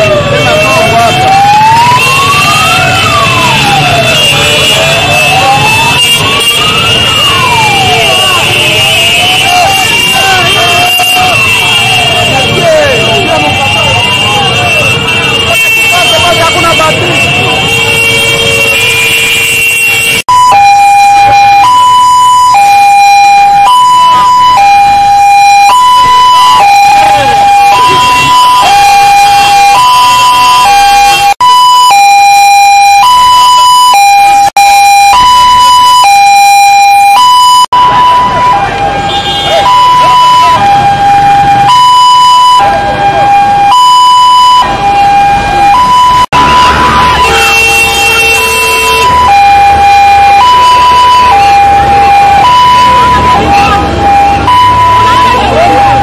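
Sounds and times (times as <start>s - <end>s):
two-tone siren: 0.0s - 56.0s.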